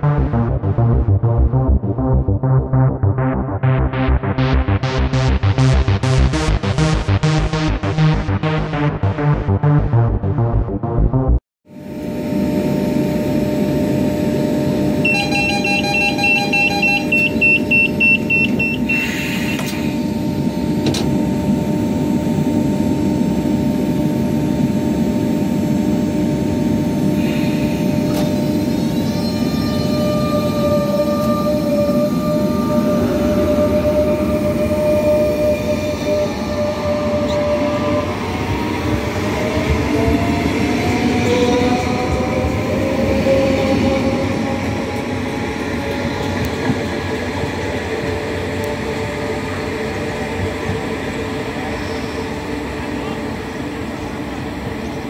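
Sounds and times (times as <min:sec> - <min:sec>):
train motors whining rising pitch: 0:00.0 - 0:55.0
rapid electronic door warning beeps: 0:15.0 - 0:19.8.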